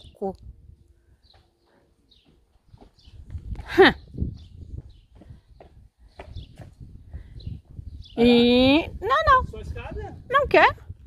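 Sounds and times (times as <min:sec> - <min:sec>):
footsteps on cobblestones: 0:01.3 - 0:03.8.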